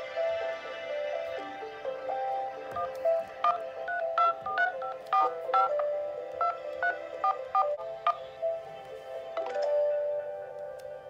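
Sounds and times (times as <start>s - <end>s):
background music: 0.0s - 11.0s
phone keypad tones: 2.8s - 8.2s.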